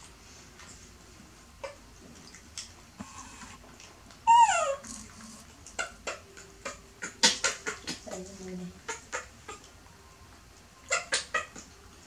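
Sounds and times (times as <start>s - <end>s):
baby macaque high call: 4.2s - 9.6s, 10.8s - 11.6s.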